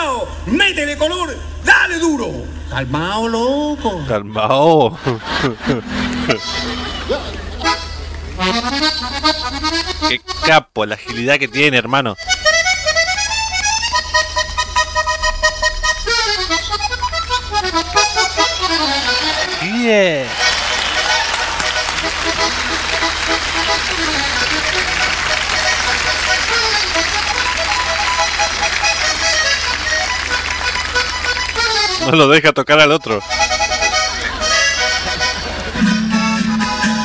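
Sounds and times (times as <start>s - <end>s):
button accordion melody: 5.1s - 32.4s, 33.0s - 37.0s
audience applause and cheering: 17.6s - 32.0s.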